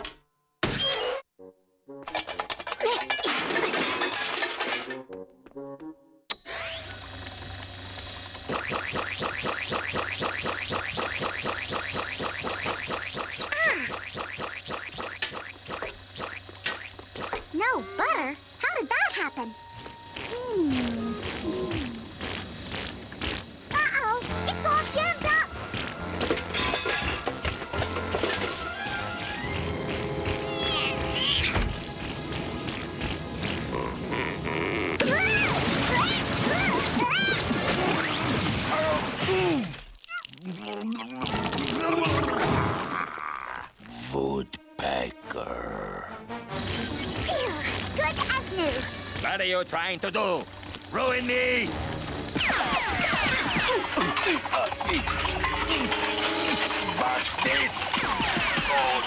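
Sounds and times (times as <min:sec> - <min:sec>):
cartoon score music: 0:23.7 - 0:37.5, 0:43.9 - 0:49.3, 0:51.2 - 0:59.0
comic sound effects: 0:40.4 - 0:43.7.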